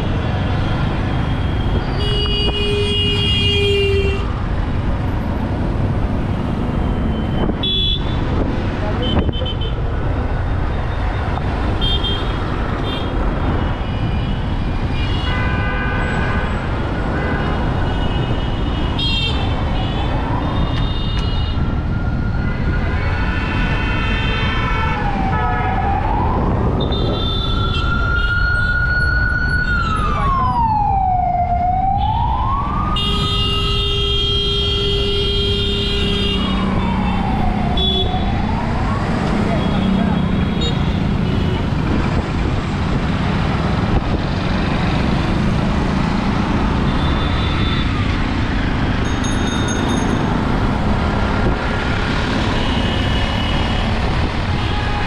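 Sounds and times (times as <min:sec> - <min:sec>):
street traffic noise: 0:00.0 - 0:55.0
siren wailing: 0:21.6 - 0:33.9, 0:36.4 - 0:40.2.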